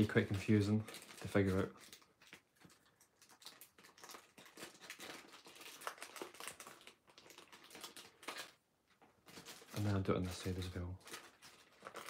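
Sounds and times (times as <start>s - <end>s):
paper rustling and crinkling: 0.0s - 12.0s.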